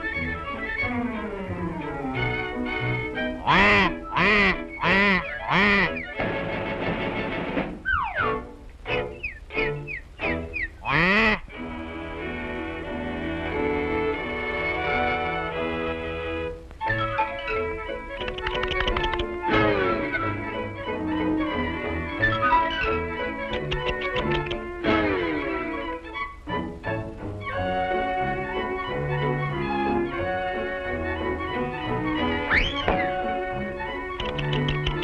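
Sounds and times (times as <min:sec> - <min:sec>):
orchestral cartoon music: 0:00.0 - 0:35.0
falling sliding calls: 0:03.4 - 0:06.2, 0:09.2 - 0:11.5
quacking duck-like calls: 0:03.4 - 0:06.2, 0:10.6 - 0:11.5.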